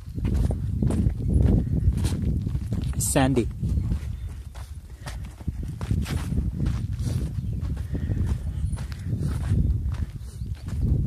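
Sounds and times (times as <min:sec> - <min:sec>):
footsteps on dirt trail: 0:00.0 - 0:11.0.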